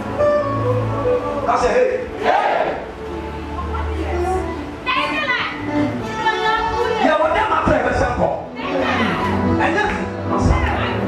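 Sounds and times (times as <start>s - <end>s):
worship music with bass: 0.0s - 4.8s
congregation shouting and singing: 0.6s - 3.4s, 8.4s - 11.0s.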